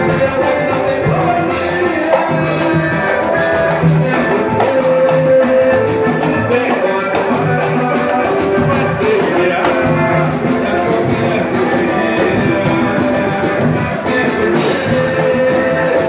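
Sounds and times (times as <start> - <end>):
guitars strumming: 0.0 - 16.0
percussion beat: 0.0 - 16.0.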